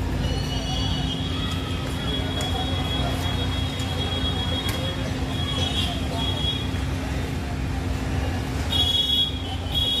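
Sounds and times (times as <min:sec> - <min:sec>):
low rumble of vehicles: 0:00.0 - 0:10.0.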